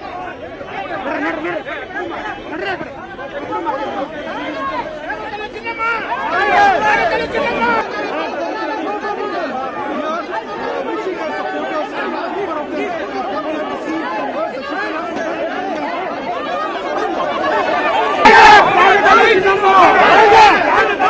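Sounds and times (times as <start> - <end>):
close shouting: 0.0 - 21.0
crowd talking and shouting: 0.0 - 21.0.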